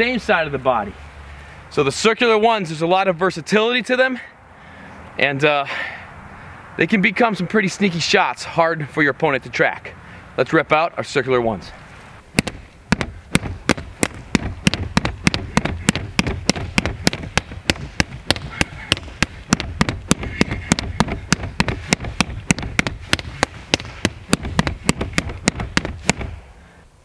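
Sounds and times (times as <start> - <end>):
sticks smacking striking dummy: 12.4 - 26.4.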